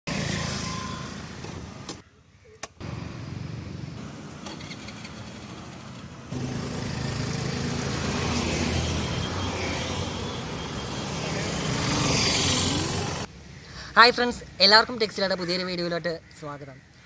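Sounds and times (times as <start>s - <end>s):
road traffic: 0.0s - 17.0s
scooter engine running: 4.0s - 9.1s.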